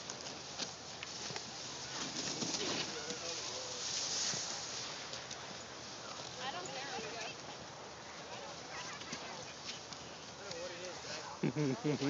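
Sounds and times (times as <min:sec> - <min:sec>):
skis sliding over snow: 0:00.0 - 0:12.0
faint voices: 0:01.1 - 0:12.0.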